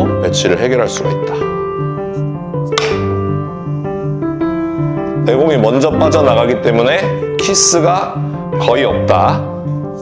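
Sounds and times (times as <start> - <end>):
instrumental music with keyboard: 0.0 - 10.0
billiard ball click: 2.8 - 3.1.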